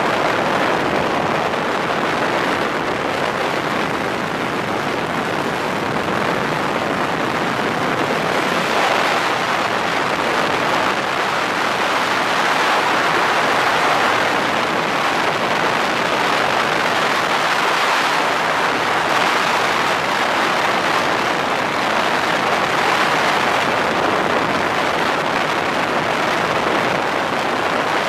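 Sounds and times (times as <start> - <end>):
outboard motor: 0.0 - 28.0
wind on microphone: 0.0 - 28.0.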